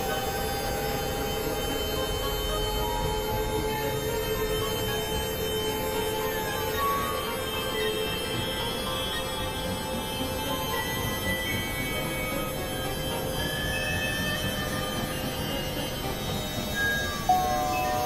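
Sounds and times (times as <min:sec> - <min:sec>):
electronic drone music: 0:00.0 - 0:18.0.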